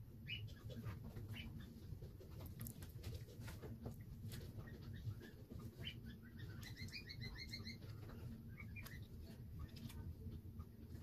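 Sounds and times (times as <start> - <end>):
small bird chirping: 0.0 - 2.8, 4.3 - 10.1
low room hum: 0.0 - 11.0.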